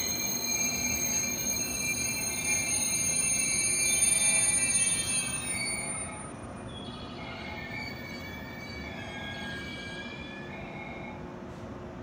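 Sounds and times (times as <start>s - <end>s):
train wheels and brakes squealing: 0.0s - 11.7s
low train rumble: 0.0s - 12.0s.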